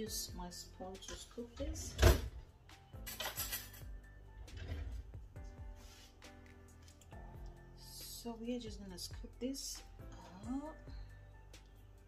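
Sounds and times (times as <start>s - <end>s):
soft background music: 0.0s - 12.0s
kitchen utensils clattering: 3.0s - 3.9s, 4.5s - 5.1s.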